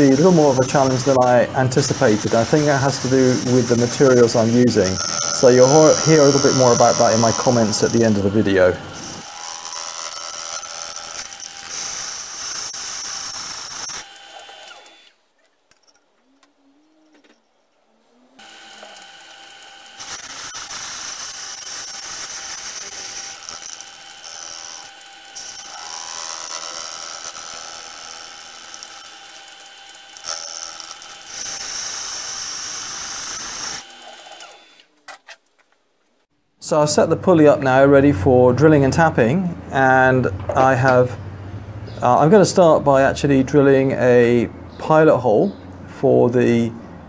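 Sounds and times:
high hissing cutting noise: 0:00.0 - 0:15.0, 0:18.4 - 0:28.9
metal lathe whine: 0:00.0 - 0:15.1, 0:18.4 - 0:34.8.

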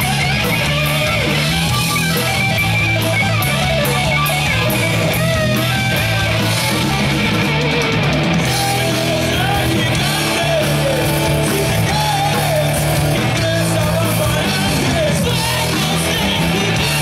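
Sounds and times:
bass guitar: 0:00.0 - 0:17.0
distorted electric guitars: 0:00.0 - 0:17.0
drum kit with cymbals: 0:00.0 - 0:17.0.

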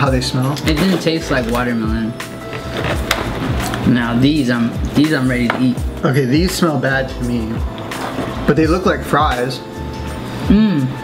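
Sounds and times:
background music: 0:00.0 - 0:11.0
paper lid tearing open: 0:02.4 - 0:03.8.

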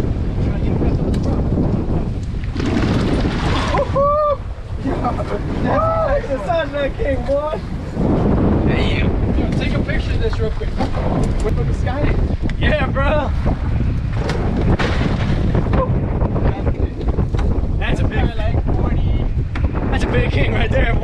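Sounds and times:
rough seas rushing: 0:00.0 - 0:21.0
wind buffeting microphone: 0:00.0 - 0:21.0.

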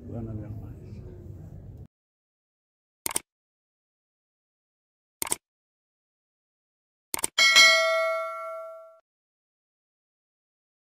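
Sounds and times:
quick clicks: 0:03.0 - 0:03.3, 0:05.2 - 0:05.4, 0:07.1 - 0:07.4
bright bell ding: 0:07.4 - 0:09.0.

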